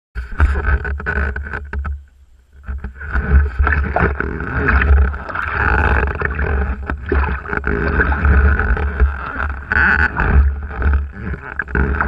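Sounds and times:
paddle splashing in water: 0:02.6 - 0:12.0.

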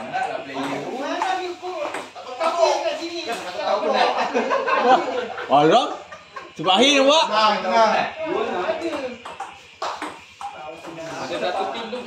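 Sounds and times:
table tennis ball tapping: 0:00.0 - 0:02.7, 0:08.8 - 0:12.0.

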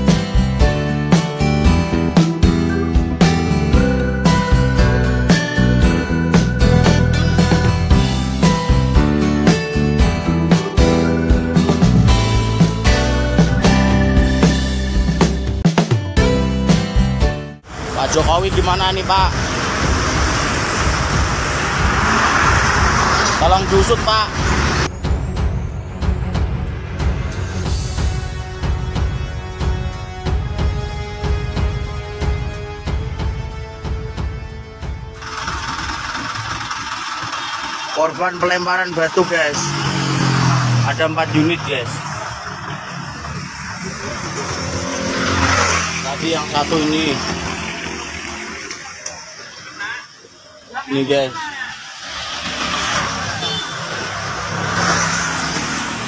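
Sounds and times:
engines rumbling: 0:00.0 - 0:15.6, 0:17.6 - 0:33.8, 0:34.5 - 0:56.0
background music: 0:00.0 - 0:19.4, 0:21.2 - 0:35.2
vehicle passing on road: 0:17.7 - 0:25.0, 0:35.2 - 0:56.0.

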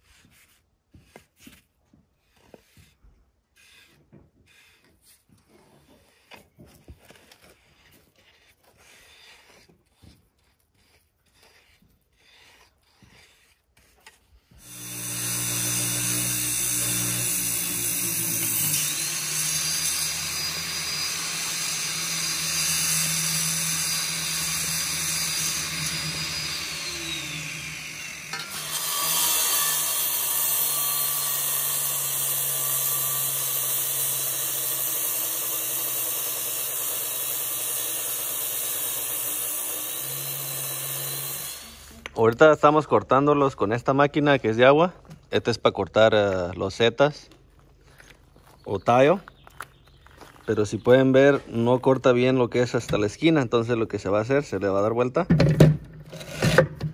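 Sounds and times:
tile saw cutting concrete: 0:02.2 - 0:44.6, 0:56.1 - 0:56.9.

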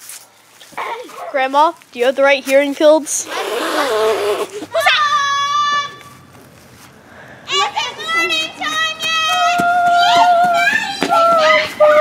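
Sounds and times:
girl vocalizing long held notes: 0:03.3 - 0:06.0.

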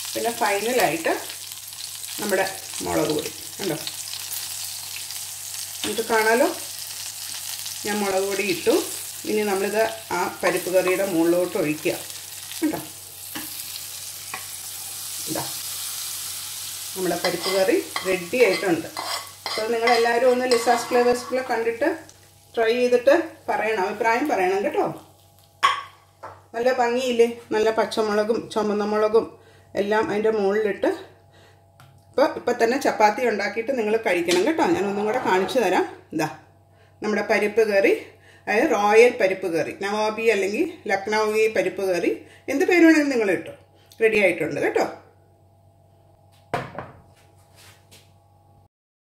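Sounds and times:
faint room hum: 0:00.0 - 0:48.7.

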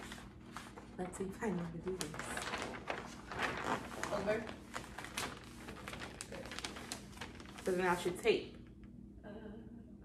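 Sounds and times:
wrapping paper crinkling: 0:00.0 - 0:08.7.

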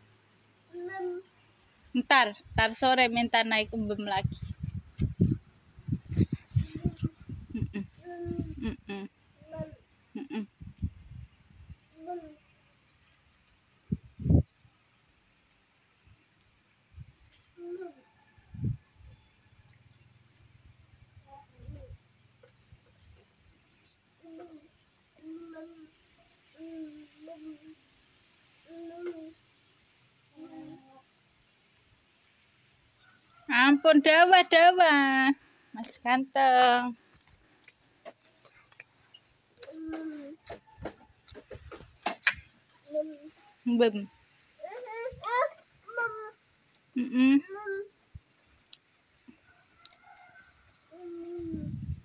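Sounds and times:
child's high-pitched vocalizing: 0:00.7 - 0:01.3, 0:06.6 - 0:09.8, 0:12.0 - 0:12.4, 0:17.6 - 0:18.0, 0:24.2 - 0:25.9, 0:26.6 - 0:27.8, 0:28.7 - 0:29.4, 0:30.3 - 0:31.0, 0:39.6 - 0:40.4, 0:44.6 - 0:46.4, 0:47.4 - 0:47.9, 0:50.9 - 0:51.8
toddler humming: 0:00.7 - 0:01.3, 0:06.6 - 0:10.4, 0:12.0 - 0:12.4, 0:17.6 - 0:18.0, 0:21.3 - 0:22.0, 0:24.2 - 0:25.9, 0:26.6 - 0:27.8, 0:28.6 - 0:29.4, 0:30.3 - 0:31.0, 0:39.6 - 0:40.4, 0:44.6 - 0:46.4, 0:47.2 - 0:47.9, 0:50.9 - 0:51.8.

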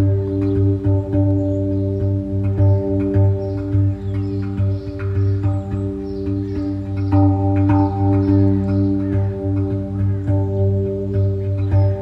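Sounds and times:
ringing tongue drum notes: 0:00.0 - 0:12.0
steady low drone: 0:00.0 - 0:12.0.

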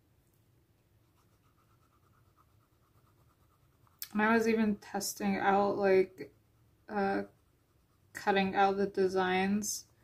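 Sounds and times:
tool scratching on paper: 0:01.0 - 0:08.6.

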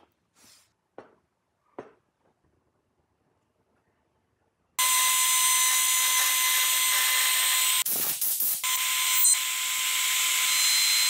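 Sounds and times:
router whining cutting wood: 0:04.8 - 0:07.8, 0:08.6 - 0:11.0.

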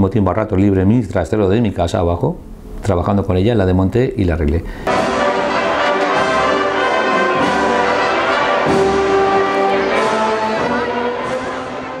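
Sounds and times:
brass band playing held chords: 0:04.9 - 0:12.0.

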